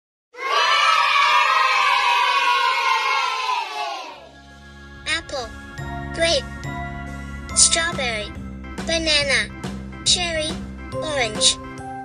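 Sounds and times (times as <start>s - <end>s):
children shouting hello together: 0.4s - 4.3s.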